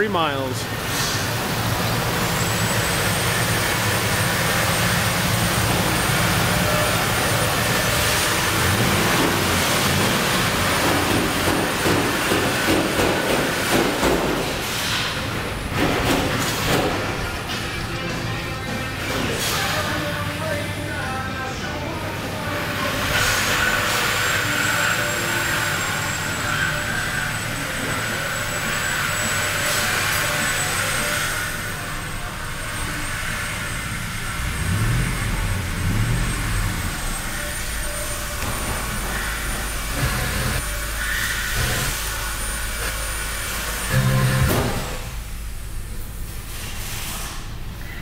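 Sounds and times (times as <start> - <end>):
engine idling and revving: 0.3 - 48.0.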